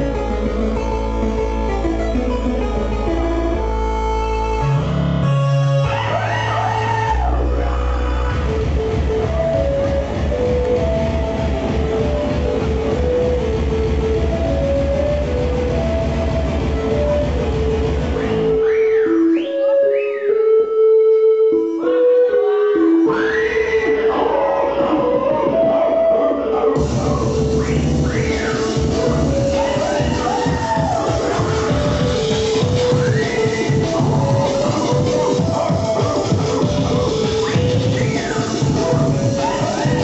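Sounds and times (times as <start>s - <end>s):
chiptune breakcore music: 0.0s - 19.4s, 22.9s - 40.0s
synth sweep: 0.0s - 40.0s.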